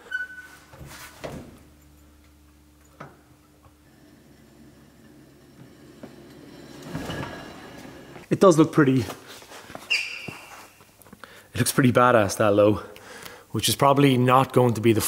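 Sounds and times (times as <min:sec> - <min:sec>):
rustling noise: 0:00.5 - 0:01.6.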